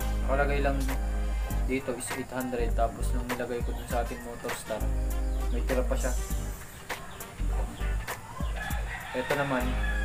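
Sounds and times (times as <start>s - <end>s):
music with steady beat: 0.0s - 10.0s
rooster crowing: 3.8s - 5.0s, 8.1s - 10.0s.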